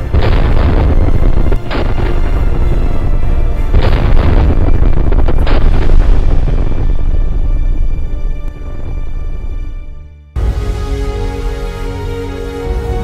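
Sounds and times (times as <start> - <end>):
cannon booms: 0.0 - 3.0, 3.6 - 7.4
music: 0.0 - 13.0.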